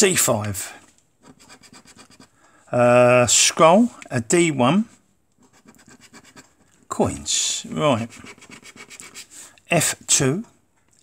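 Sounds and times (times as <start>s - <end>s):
metal scraper scratching scratchcard: 8.0s - 9.3s.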